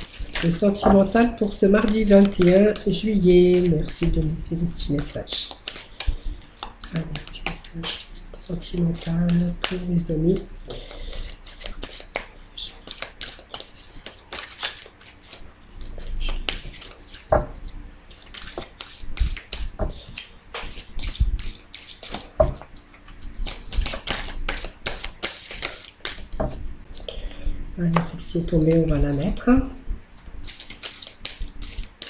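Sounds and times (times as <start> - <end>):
cards being shuffled: 0.0 - 27.1, 30.2 - 32.0
cards tapping: 1.8 - 8.1, 8.7 - 15.4, 16.3 - 22.8, 23.4 - 26.6, 30.5 - 32.0.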